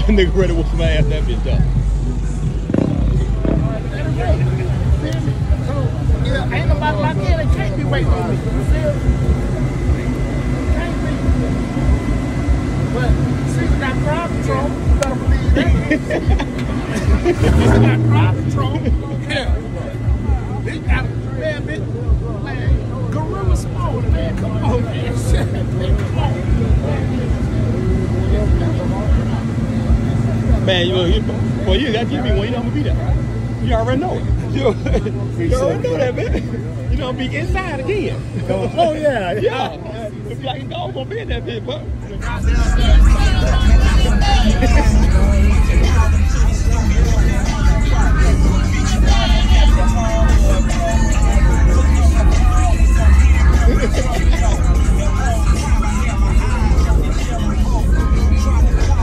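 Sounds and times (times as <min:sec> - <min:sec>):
low rumble: 0:00.0 - 0:31.6, 0:41.8 - 0:59.0
car engine idling: 0:00.0 - 0:59.0
people talking: 0:00.0 - 0:59.0
irregular low thumps: 0:00.8 - 0:06.2.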